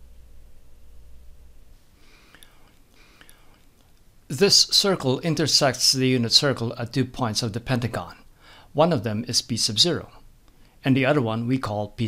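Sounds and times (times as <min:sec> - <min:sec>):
faint breath: 0:01.8 - 0:03.7, 0:08.3 - 0:08.7, 0:10.5 - 0:10.8.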